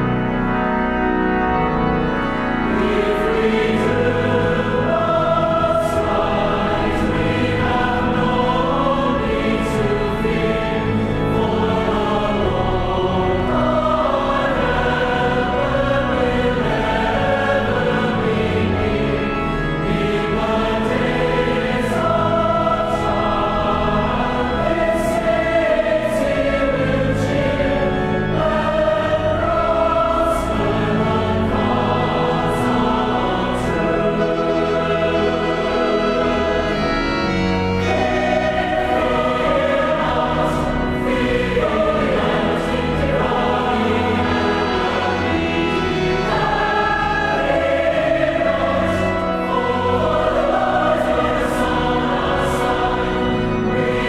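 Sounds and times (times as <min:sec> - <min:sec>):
choir singing sacred music: 0:00.0 - 0:54.0.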